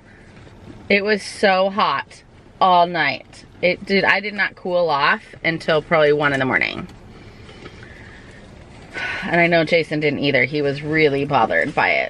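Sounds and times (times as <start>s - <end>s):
car cabin background noise: 0.0s - 12.0s.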